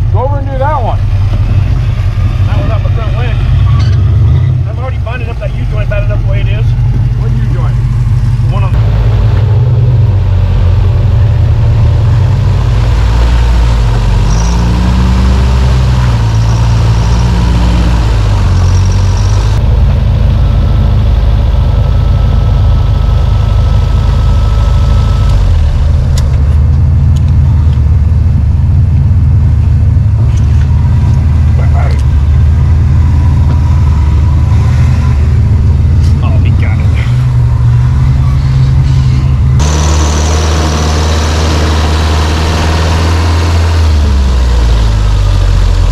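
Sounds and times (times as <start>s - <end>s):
off-road vehicle engine revving: 0.0s - 45.9s.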